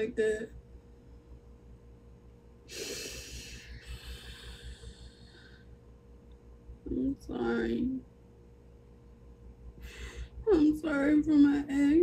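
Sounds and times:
person breathing loudly: 2.7s - 5.8s.

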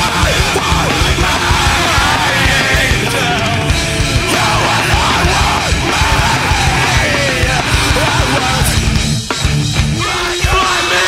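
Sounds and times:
distorted guitars: 0.0s - 11.0s
fast drums: 0.0s - 11.0s.

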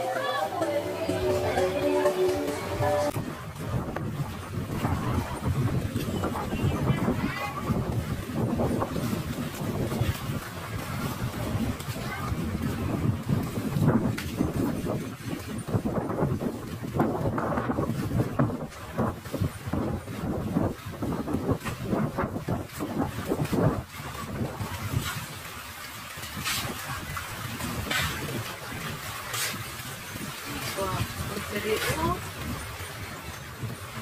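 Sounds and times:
people talking in background: 0.0s - 3.1s
wind on microphone: 0.0s - 34.0s.

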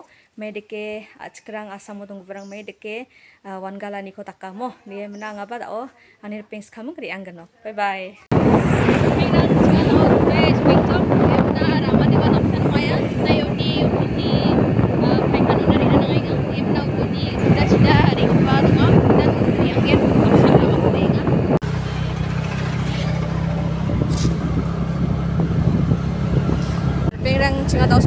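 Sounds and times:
low engine hum: 8.3s - 28.0s
wind rushing over microphone: 8.3s - 28.0s.

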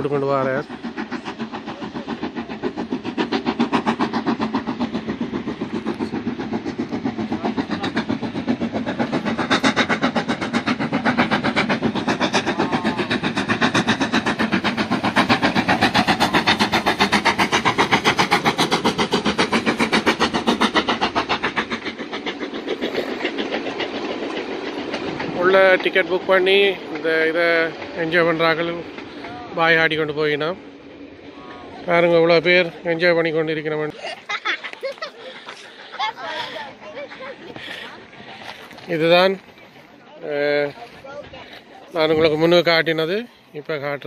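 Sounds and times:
steam locomotive chuffing: 0.0s - 44.0s
train coaches rumbling on rails: 0.0s - 44.0s.

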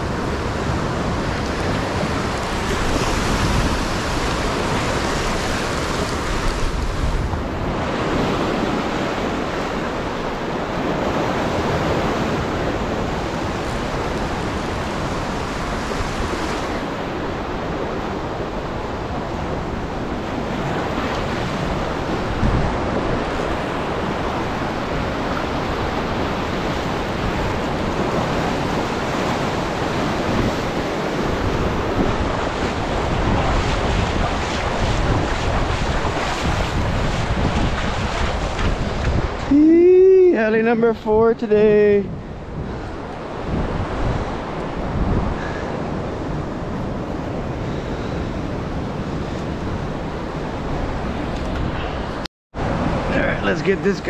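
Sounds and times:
ocean surf breaking: 0.0s - 54.0s
wind buffeting microphone: 0.0s - 54.0s.

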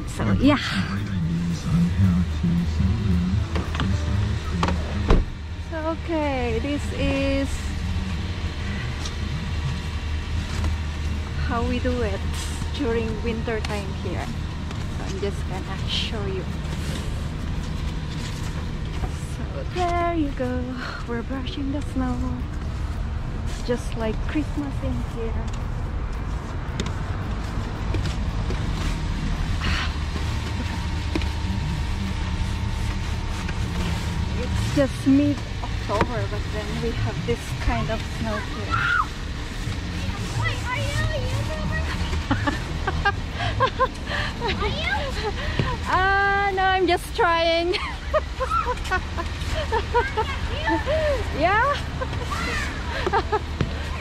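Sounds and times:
car engine idling: 0.0s - 54.0s
brush sweeping snow: 32.3s - 35.4s.

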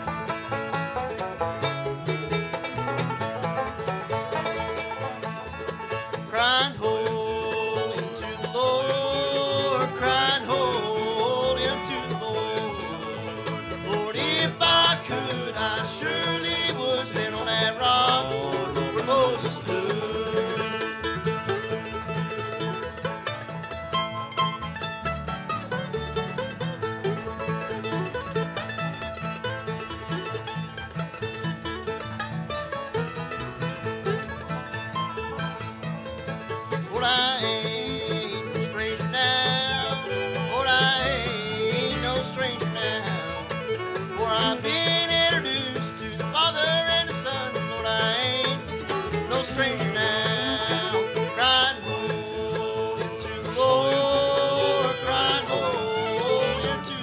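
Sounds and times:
acoustic guitar: 0.0s - 57.0s
banjo: 0.0s - 57.0s
fiddle: 0.0s - 57.0s
mandolin: 0.0s - 57.0s
upright bass: 0.0s - 57.0s.

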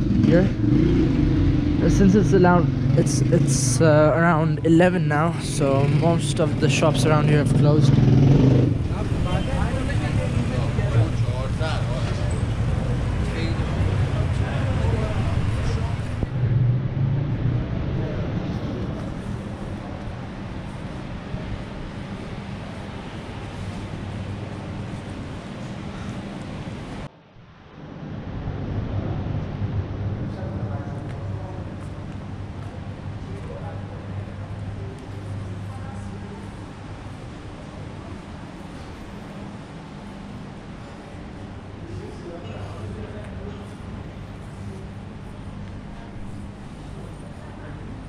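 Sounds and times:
people talking: 0.0s - 0.6s, 1.8s - 8.1s, 8.9s - 16.3s, 30.2s - 36.8s, 41.8s - 48.0s
constant low hum: 0.0s - 48.0s.

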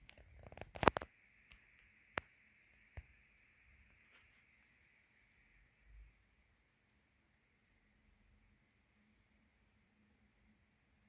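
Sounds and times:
clicks and rustling: 0.0s - 1.1s
faint steady high hiss: 0.0s - 11.0s.

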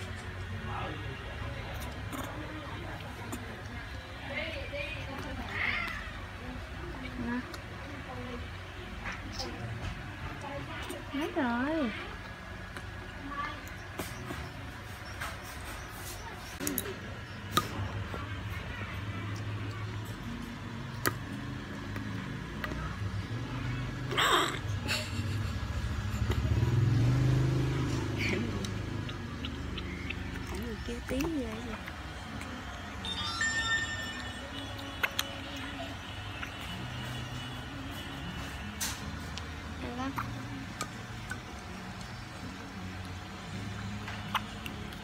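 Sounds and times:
vehicle engine passing: 18.6s - 33.1s.

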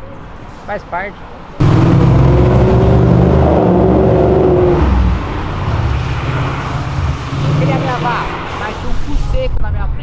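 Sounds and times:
road noise: 0.0s - 10.0s
passing car engine and exhaust: 1.6s - 9.5s.

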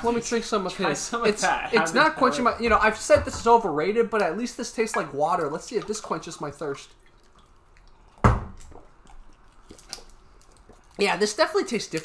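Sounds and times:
person drinking and swallowing: 7.0s - 11.0s.

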